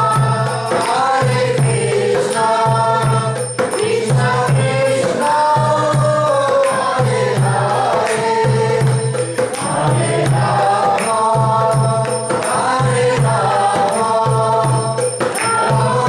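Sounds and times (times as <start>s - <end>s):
hand cymbals striking a beat: 0.0s - 16.0s.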